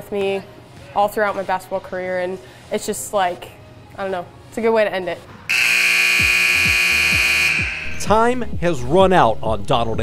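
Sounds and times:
scoreboard horn buzzing: 0:05.5 - 0:08.4.

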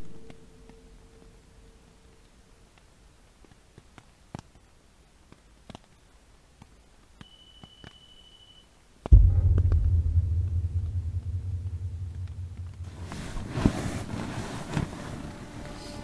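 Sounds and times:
faint high alarm beep: 0:07.2 - 0:08.8
loud low thump and rumble: 0:09.1 - 0:13.6.

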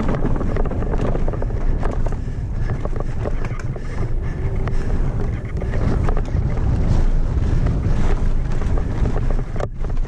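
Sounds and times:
bike rattling and clacking: 0:00.0 - 0:10.0
tyres rumbling on dirt trail: 0:00.0 - 0:10.0
wind buffeting microphone: 0:00.0 - 0:10.0.

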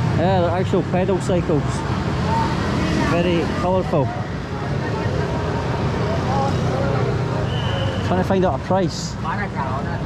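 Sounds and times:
motorbikes: 0:00.0 - 0:10.0
road traffic hum: 0:00.0 - 0:10.0
voices of people: 0:00.0 - 0:10.0.

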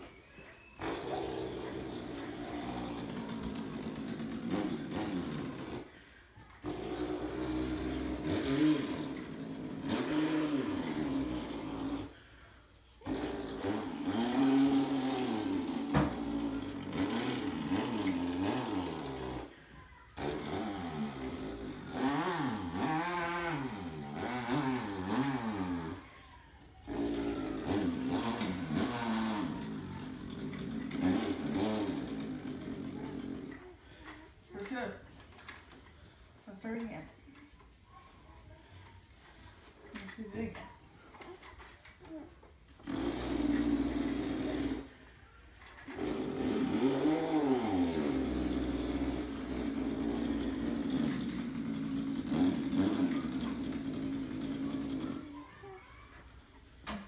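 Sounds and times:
person imitating a chainsaw: 0:00.8 - 0:34.7, 0:41.2 - 0:45.1, 0:45.8 - 0:56.2.

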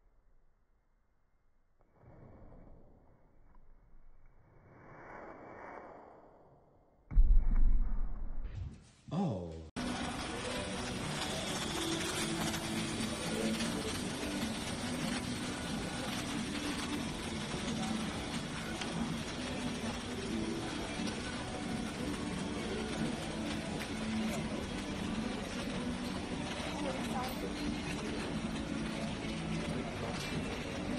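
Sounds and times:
constant wash of shop noise: 0:09.8 - 0:30.9
shopping cart rolling on floor: 0:09.8 - 0:30.9.

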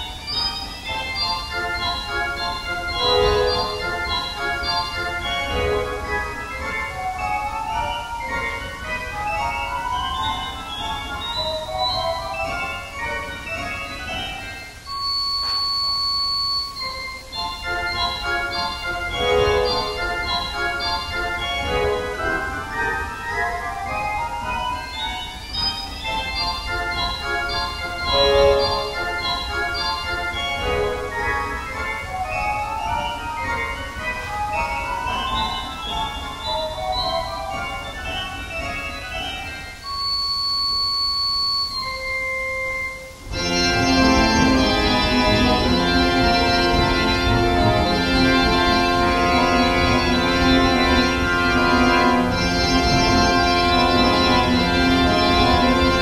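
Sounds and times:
pipe organ note: 0:00.0 - 0:15.6, 0:16.7 - 0:40.0, 0:41.7 - 0:56.0
high shrill organ note: 0:34.6 - 0:56.0
pipe organ playing quick passage: 0:43.3 - 0:56.0.

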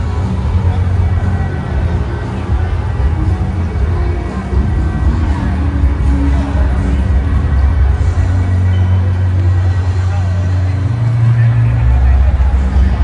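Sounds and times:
crowd chatter: 0:00.0 - 0:13.0
loud music with deep bass: 0:00.0 - 0:13.0.

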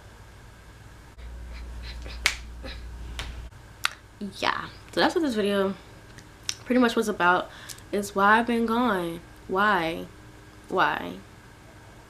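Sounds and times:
low hum: 0:00.0 - 0:06.2
finger snaps: 0:01.9 - 0:04.0.

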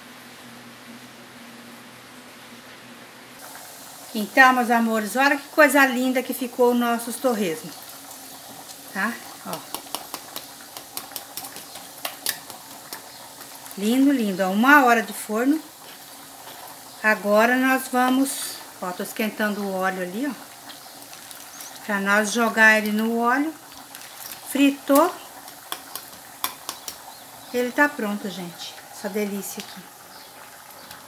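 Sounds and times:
faint sizzle: 0:00.0 - 0:31.0
faint steady hiss: 0:00.0 - 0:31.0
pork crackling and ticking: 0:07.6 - 0:27.9, 0:28.8 - 0:31.0
metal fork tapping on food: 0:25.7 - 0:27.0.

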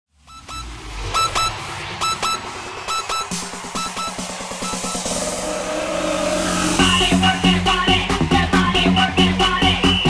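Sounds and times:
synth blips: 0:00.2 - 0:07.0
fast repeating synth pulse: 0:00.2 - 0:08.4
low bass: 0:05.4 - 0:10.0.

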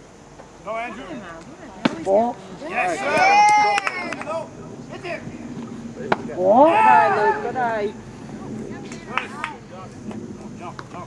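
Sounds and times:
outdoor background noise: 0:00.0 - 0:11.0
distant people shouting: 0:00.6 - 0:11.0.

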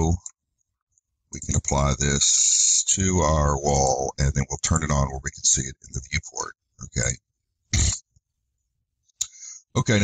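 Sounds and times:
man's throat noise: 0:07.8 - 0:08.0.

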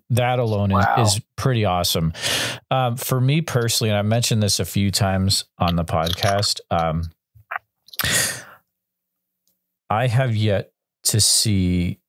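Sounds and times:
man breathing: 0:02.2 - 0:02.7, 0:08.0 - 0:08.6.

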